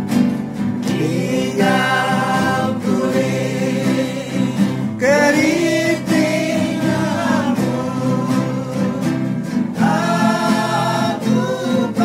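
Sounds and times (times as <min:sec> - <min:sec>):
strummed acoustic guitars: 0:00.0 - 0:12.0
group singing a hymn: 0:00.8 - 0:12.0.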